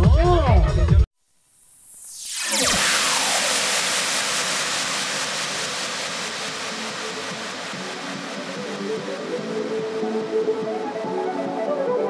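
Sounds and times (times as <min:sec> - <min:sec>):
white noise wash: 0:02.0 - 0:11.6.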